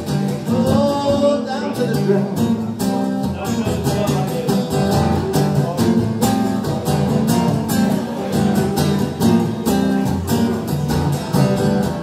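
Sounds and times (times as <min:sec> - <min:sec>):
man singing: 0:00.0 - 0:07.0
electric guitar playing: 0:00.0 - 0:12.0.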